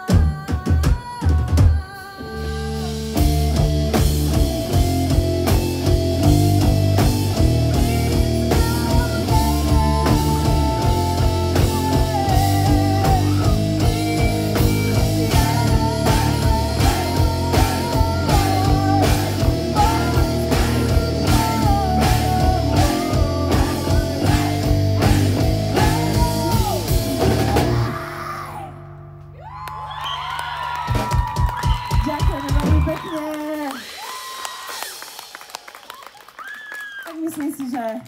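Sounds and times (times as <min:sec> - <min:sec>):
woman singing: 0:00.0 - 0:03.2, 0:07.7 - 0:26.8
drum kit: 0:00.0 - 0:28.2, 0:30.8 - 0:36.4
bass guitar: 0:00.0 - 0:33.7
electric guitars: 0:02.0 - 0:29.9.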